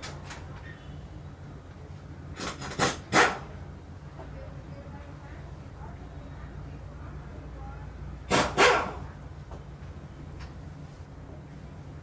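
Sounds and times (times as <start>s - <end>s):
background traffic hum: 0.0s - 12.0s.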